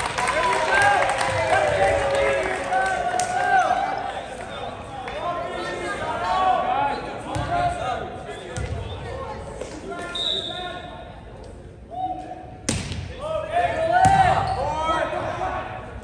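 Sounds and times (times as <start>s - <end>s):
referee's whistle: 10.1s - 10.8s.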